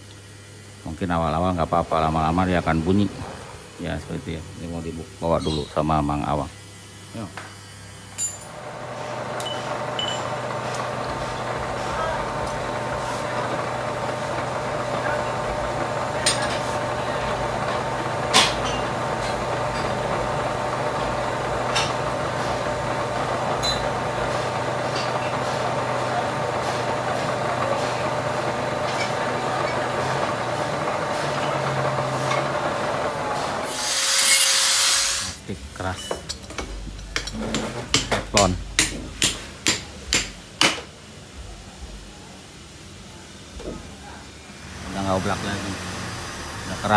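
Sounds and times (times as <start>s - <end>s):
metal lathe running: 8.5s - 35.4s
harsh metal cutting: 8.6s - 35.4s, 44.6s - 46.9s.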